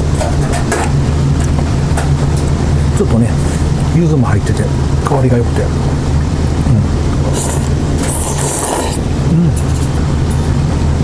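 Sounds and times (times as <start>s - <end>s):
steady low hum: 0.0s - 11.0s
noodles being slurped: 7.2s - 9.9s.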